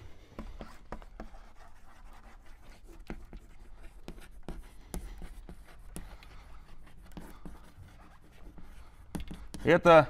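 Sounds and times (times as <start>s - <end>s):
chalk writing on blackboard: 0.1s - 10.0s.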